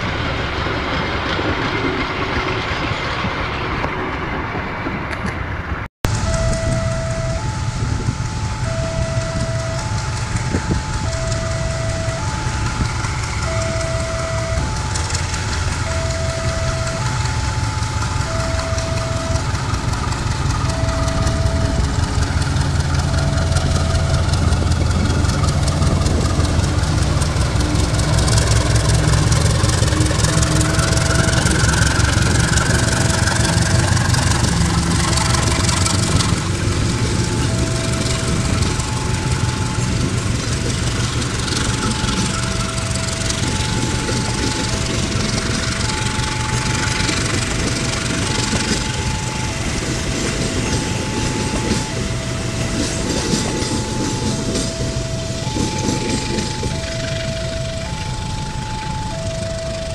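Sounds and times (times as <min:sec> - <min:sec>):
diesel locomotive engine rumble: 0:00.0 - 0:59.9
two-note electronic warning signal: 0:06.2 - 0:59.9.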